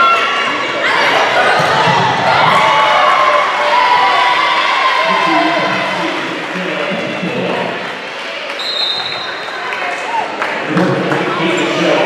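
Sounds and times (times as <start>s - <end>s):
voices echoing in gym: 0.0s - 12.0s.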